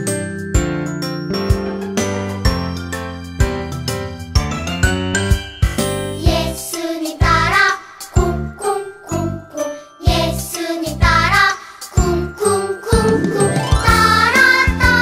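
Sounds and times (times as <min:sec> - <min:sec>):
children's song sung over bouncy backing: 0:05.9 - 0:15.0.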